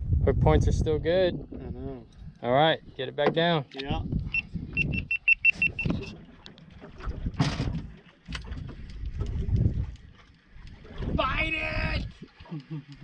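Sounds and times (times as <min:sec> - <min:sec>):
water around boat: 0:00.0 - 0:13.0
wind: 0:00.0 - 0:13.0.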